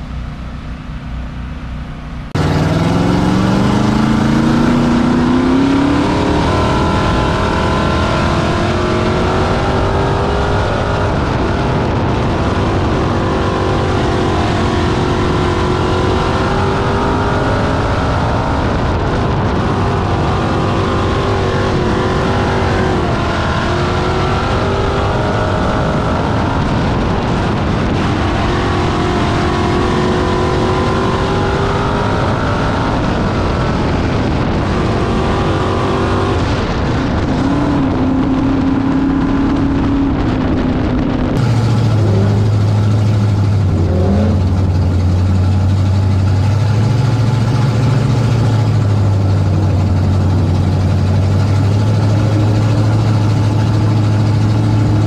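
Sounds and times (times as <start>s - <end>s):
race car engine revving: 0.0s - 55.0s.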